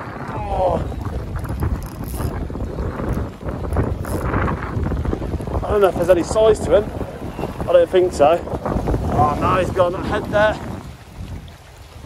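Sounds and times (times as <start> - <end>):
wind buffeting microphone: 0.0 - 12.0
fishing reel winding: 1.4 - 2.4, 3.0 - 4.4.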